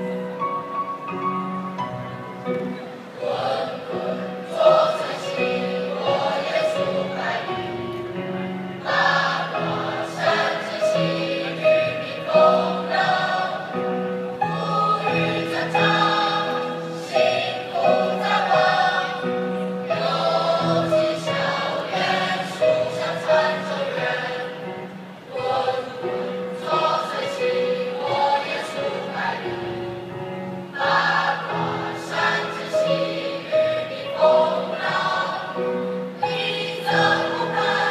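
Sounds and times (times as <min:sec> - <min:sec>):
choir singing sustained notes: 0:02.9 - 0:37.9.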